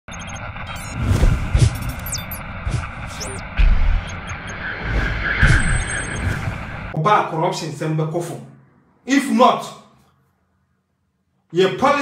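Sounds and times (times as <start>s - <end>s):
quick high beeps: 0.1s - 2.4s, 3.1s - 6.5s
whooshes: 0.7s - 7.0s.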